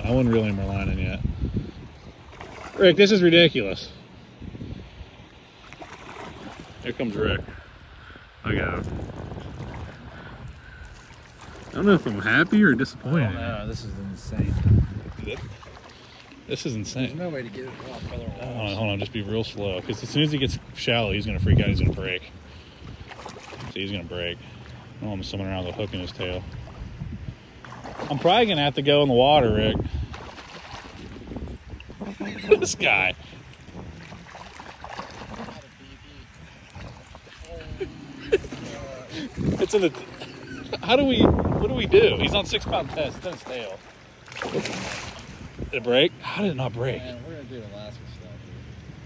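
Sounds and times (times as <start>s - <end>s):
wind buffeting microphone: 0.0s - 2.9s, 3.6s - 5.2s, 6.0s - 15.8s, 16.6s - 24.1s, 24.9s - 43.8s, 44.4s - 45.9s
man laughing: 31.9s - 33.0s, 37.5s - 41.1s.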